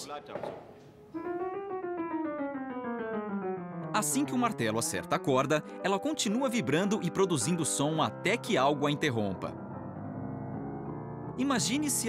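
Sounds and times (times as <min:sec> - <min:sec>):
grand piano descending run: 0:08.6 - 0:12.0.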